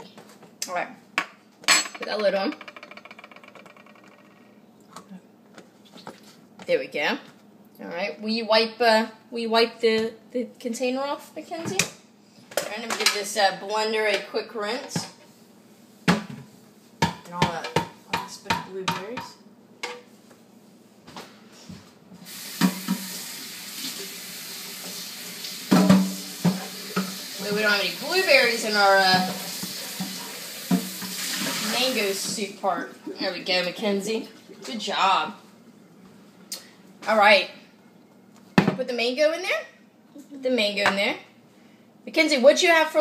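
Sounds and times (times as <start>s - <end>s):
tap running into a sink: 22.4s - 27.7s, 29.1s - 32.4s.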